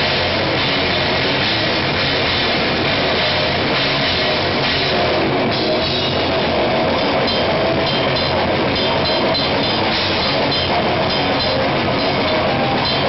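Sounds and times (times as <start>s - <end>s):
distorted guitar: 0.0s - 13.0s
drums and cymbals pounding: 0.0s - 13.0s.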